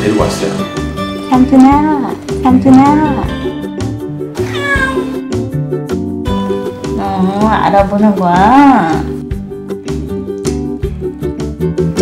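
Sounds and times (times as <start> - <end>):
background music: 0.0 - 12.0
cat meowing: 4.4 - 5.3.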